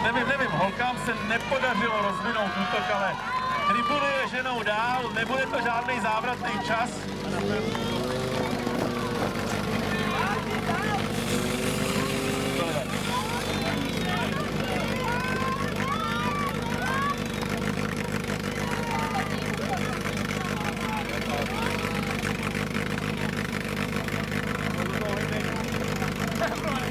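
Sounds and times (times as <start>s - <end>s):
people shouting: 0.0s - 22.3s
fire pump engine running: 0.0s - 26.9s.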